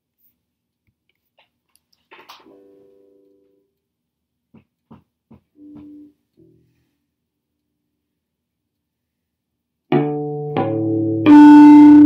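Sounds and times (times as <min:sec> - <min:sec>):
unamplified bass guitar notes: 0:09.9 - 0:12.0.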